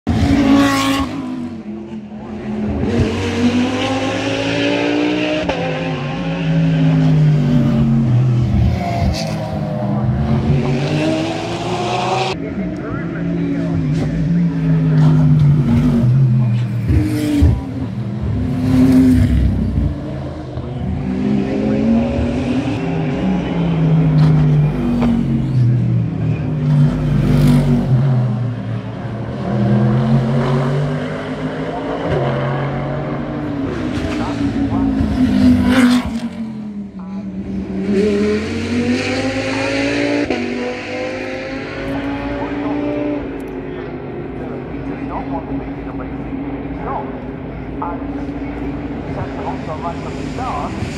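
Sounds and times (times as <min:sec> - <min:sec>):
race car engines passing: 0:00.1 - 0:50.9.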